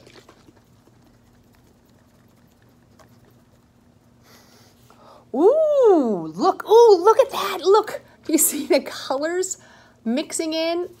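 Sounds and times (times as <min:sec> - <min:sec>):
liquid sloshing in plastic bottle: 0:00.0 - 0:03.5.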